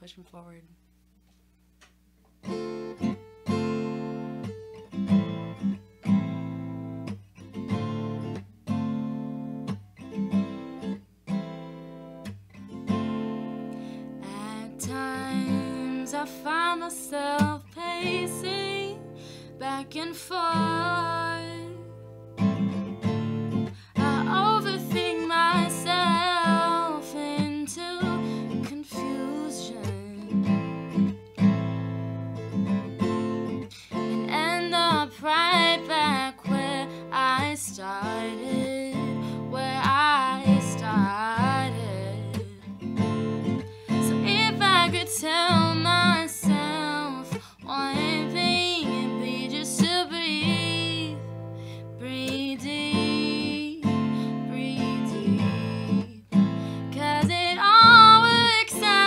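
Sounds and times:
acoustic guitar chords: 2.4s - 59.0s
woman singing: 14.2s - 22.1s, 23.9s - 30.7s, 33.9s - 42.9s, 43.9s - 59.0s.

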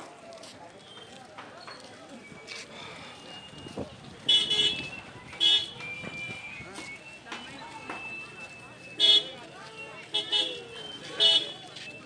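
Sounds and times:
crowd chatter: 0.0s - 12.0s
vehicle horn toots: 4.3s - 5.7s.

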